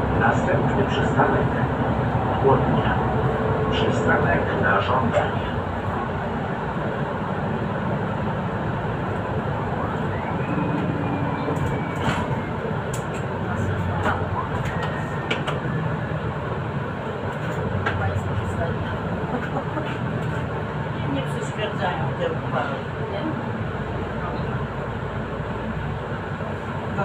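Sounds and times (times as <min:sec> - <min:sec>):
bus engine drone: 0:00.0 - 0:27.0
road noise: 0:00.0 - 0:27.0.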